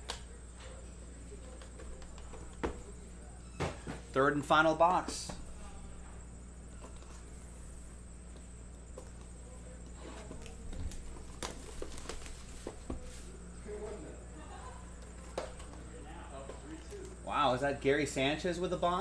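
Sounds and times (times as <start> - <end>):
low steady hum: 0.0 - 19.0
plastic wrap crinkling and tearing: 10.4 - 12.7.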